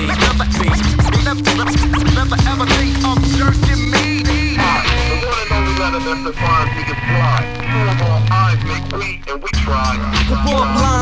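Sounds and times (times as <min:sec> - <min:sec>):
hip hop beat: 0:00.0 - 0:11.0
turntable scratching: 0:00.0 - 0:11.0.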